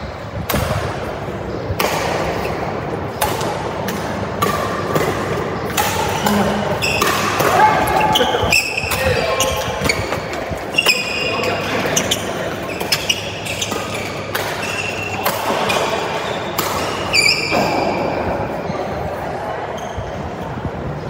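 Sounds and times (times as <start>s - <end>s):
rackets striking shuttlecock: 0.4s - 1.1s, 1.7s - 12.1s, 12.7s - 18.1s
shoes squeaking on court: 4.9s - 19.1s, 19.7s - 20.4s.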